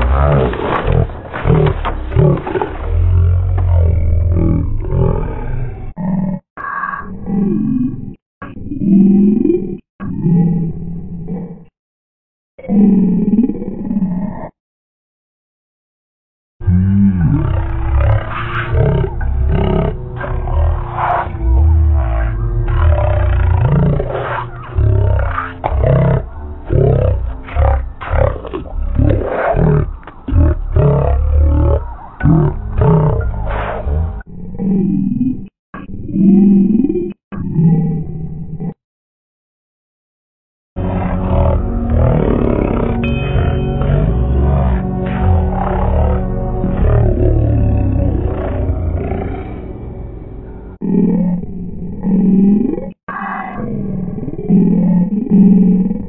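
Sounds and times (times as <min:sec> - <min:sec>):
slowed cartoon voices and effects: 0:00.0 - 0:11.7, 0:12.6 - 0:14.6, 0:16.6 - 0:38.8, 0:40.8 - 0:56.0.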